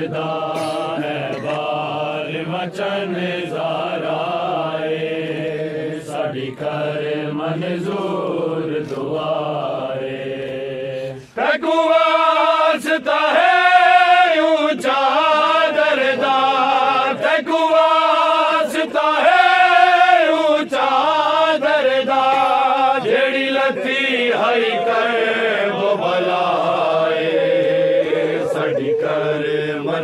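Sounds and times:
men chanting in unison: 0:00.0 - 0:30.0.

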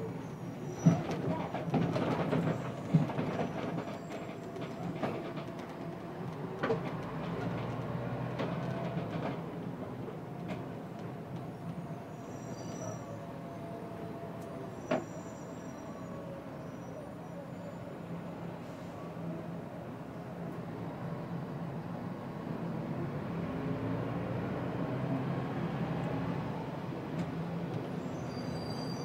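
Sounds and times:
bus engine running: 0:00.0 - 0:12.7.

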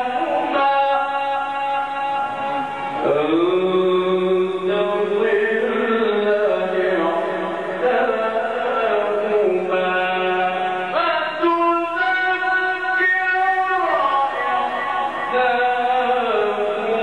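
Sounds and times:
man chanting into a microphone: 0:00.0 - 0:17.0.

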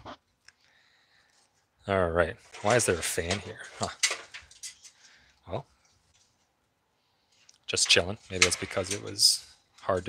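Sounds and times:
plastic fan clicking and rattling: 0:02.4 - 0:05.1, 0:07.8 - 0:10.0.

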